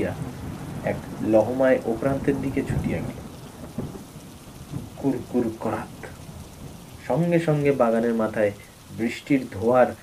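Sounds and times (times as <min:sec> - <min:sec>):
low rumble of thunder: 0:00.0 - 0:10.0
steady rain falling: 0:00.0 - 0:10.0.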